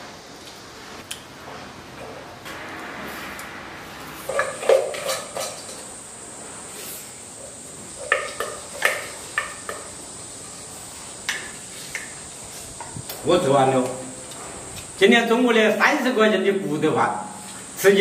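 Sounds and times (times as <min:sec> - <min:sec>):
utensils clinking on metal bowls: 0:04.3 - 0:05.9, 0:08.0 - 0:09.9.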